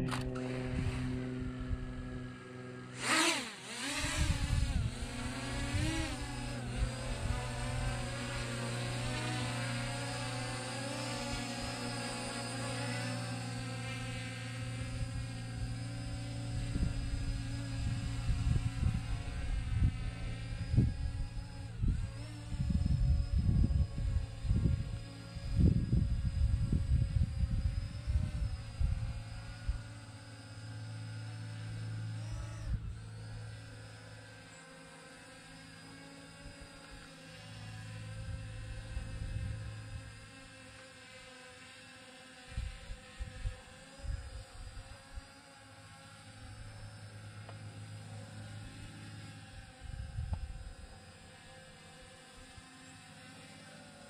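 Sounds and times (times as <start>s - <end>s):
drone propellers whining: 0.0s - 54.0s
steady low hum: 0.0s - 54.0s
wind gusts on microphone: 3.9s - 9.8s, 14.7s - 30.0s.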